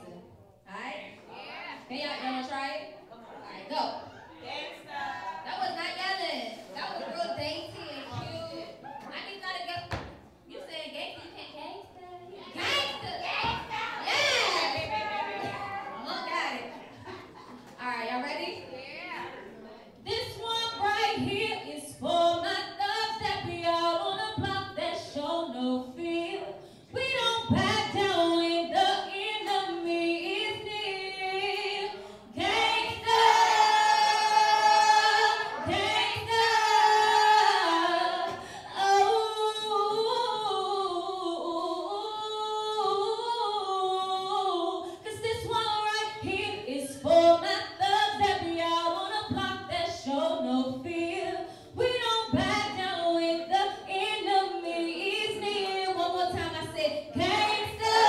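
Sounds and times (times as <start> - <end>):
woman singing: 20.1 - 58.0.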